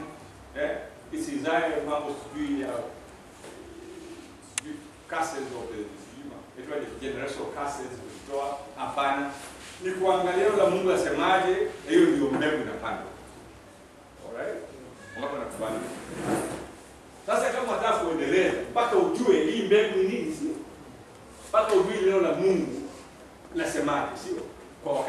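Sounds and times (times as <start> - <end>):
scraping rustle: 15.6 - 16.8
man preaching: 21.5 - 22.9.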